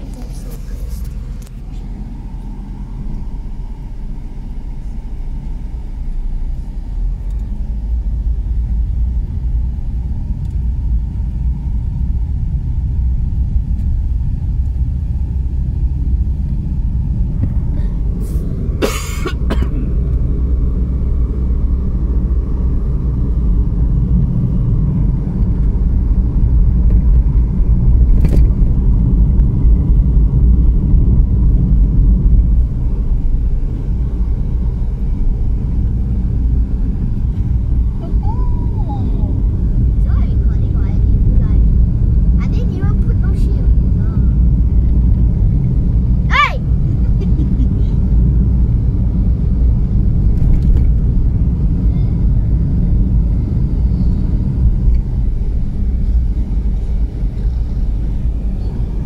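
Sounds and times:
car road and engine rumble: 0.0 - 59.0.

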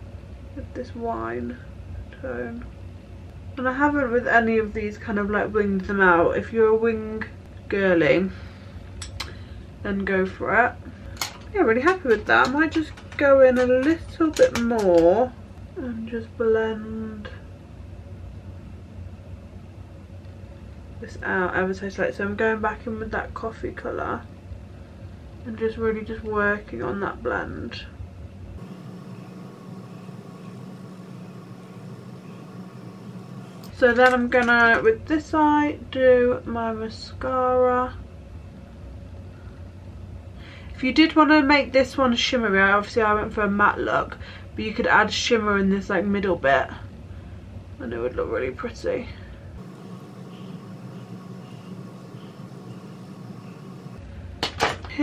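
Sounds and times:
low room hum: 0.0 - 55.0
low hum: 28.5 - 34.3, 49.6 - 54.3
faint hiss: 49.6 - 54.0.

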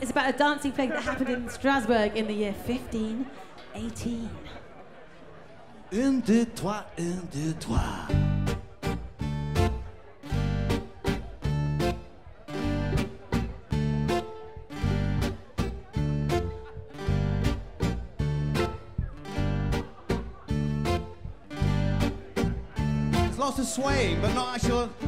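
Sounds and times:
bass guitar: 7.0 - 25.0
strummed acoustic guitar: 7.0 - 25.0
drums: 7.6 - 25.0
fiddle: 8.3 - 25.0.

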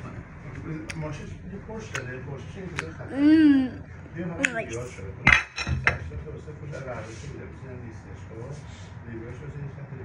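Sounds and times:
kitchenware clattering: 5.2 - 6.2.

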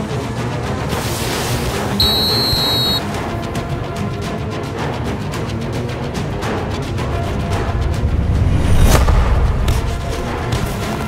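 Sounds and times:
film score music: 0.0 - 11.0
referee's whistle blast: 2.0 - 3.0.

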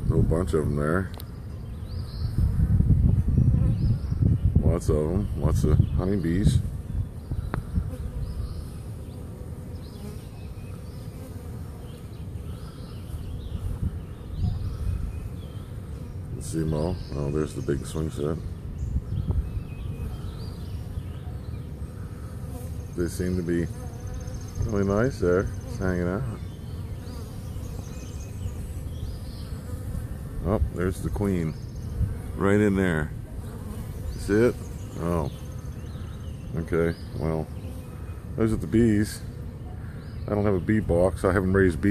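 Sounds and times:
bees buzzing: 0.0 - 41.9.

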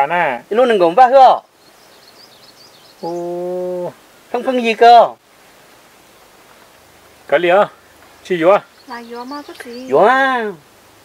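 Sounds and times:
faint bird chirps: 0.6 - 4.8, 6.0 - 10.6
person vocalizing ohh: 3.0 - 4.0.

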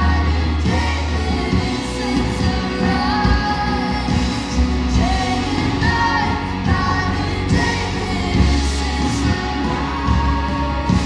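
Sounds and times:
woman singing lead: 0.0 - 11.0
worship band playing: 0.0 - 11.0.

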